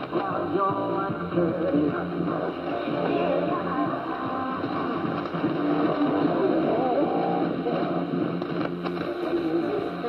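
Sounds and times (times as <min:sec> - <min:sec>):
faint radio music: 0:00.0 - 0:10.0
radio static and hiss: 0:00.0 - 0:10.0.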